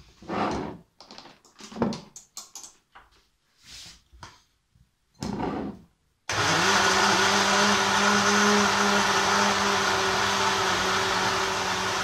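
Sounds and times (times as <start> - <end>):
plastic items clicking and knocking: 1.0 - 2.8.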